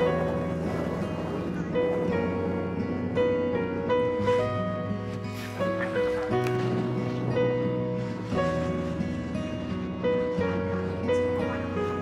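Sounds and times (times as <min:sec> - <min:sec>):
slow instrumental music: 0:00.0 - 0:12.0.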